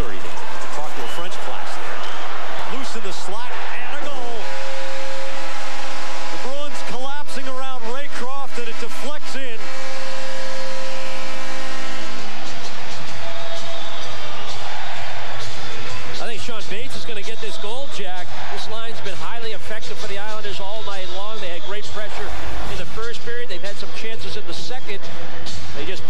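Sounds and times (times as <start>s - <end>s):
crowd cheering: 0.0s - 26.0s
arena goal horn: 1.0s - 16.3s.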